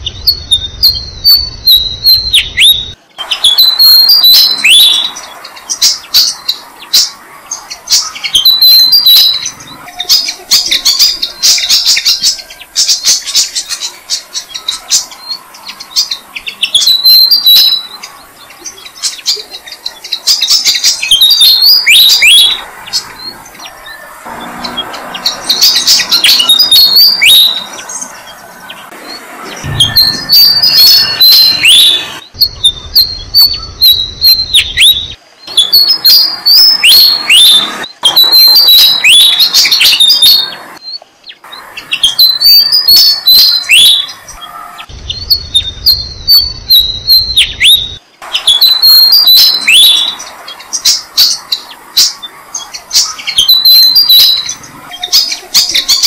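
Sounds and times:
nestlings chirping: 0.0 - 56.0.

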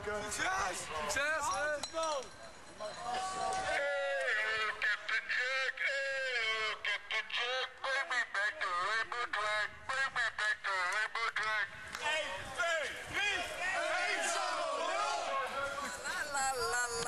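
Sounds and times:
man shouting through a megaphone: 3.6 - 16.8.

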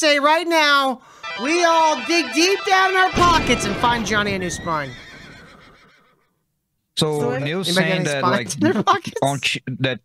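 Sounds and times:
person speaking: 1.4 - 5.0, 7.0 - 10.0.

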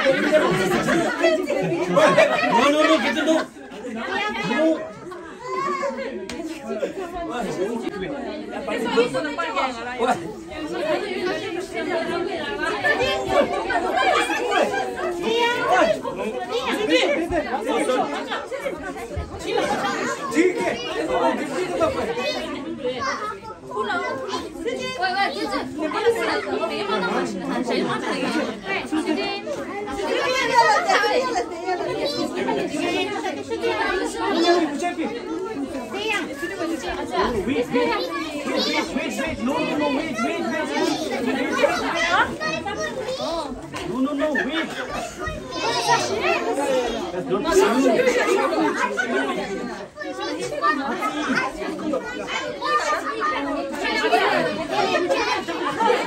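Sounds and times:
adults and children chattering: 0.0 - 56.0.

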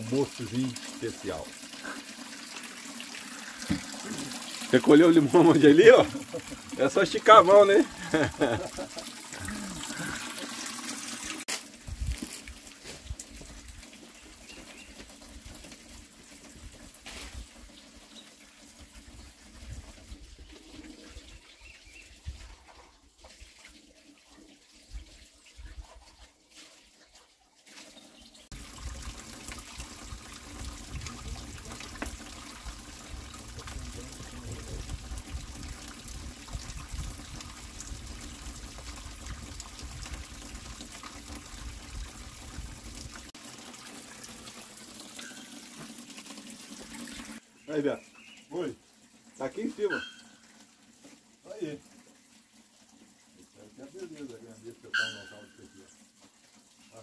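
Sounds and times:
water running from a pipe: 0.0 - 57.0.

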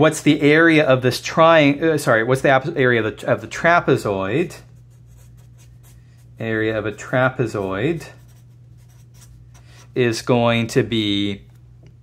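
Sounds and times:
marker scratching on paper: 4.6 - 6.4, 7.4 - 10.0.

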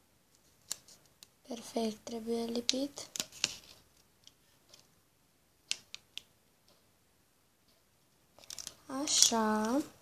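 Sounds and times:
paper sticker clicks and rustles: 8.4 - 9.8.

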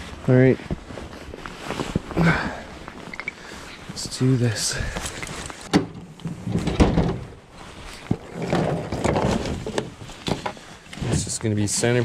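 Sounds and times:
rustling and clatter of gear: 0.0 - 12.0.

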